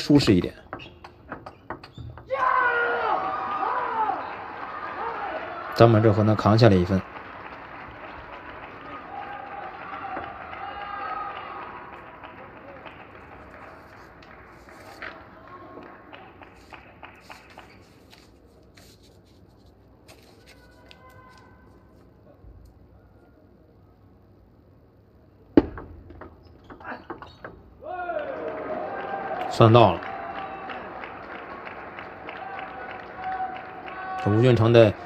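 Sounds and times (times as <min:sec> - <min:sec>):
crowd applauding and calling out: 0:03.0 - 0:18.3, 0:27.9 - 0:35.0
scattered claps: 0:04.2 - 0:18.3, 0:28.4 - 0:35.0.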